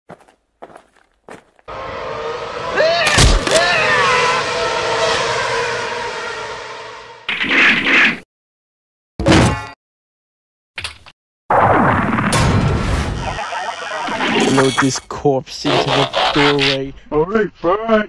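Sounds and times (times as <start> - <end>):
loud noise burst: 1.7 - 7.3
crash with screeching noise: 1.7 - 8.0, 11.5 - 15.1.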